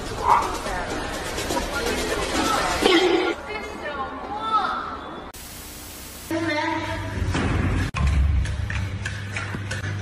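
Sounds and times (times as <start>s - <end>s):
static hiss burst: 5.4s - 6.3s.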